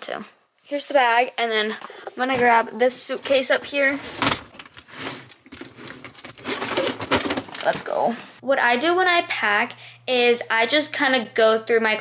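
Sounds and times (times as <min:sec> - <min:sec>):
luggage shuffling: 0:03.3 - 0:08.3.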